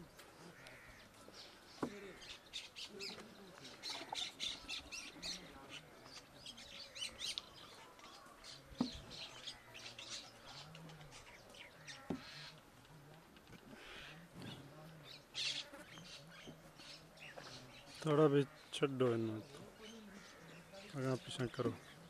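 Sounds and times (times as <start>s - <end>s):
small birds chirping: 0.0s - 22.0s.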